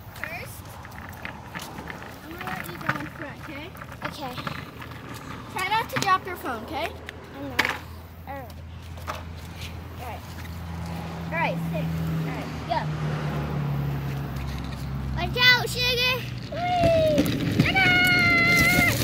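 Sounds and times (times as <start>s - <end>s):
skateboard wheels rolling on concrete: 0.0s - 19.0s
children squealing: 16.5s - 19.0s.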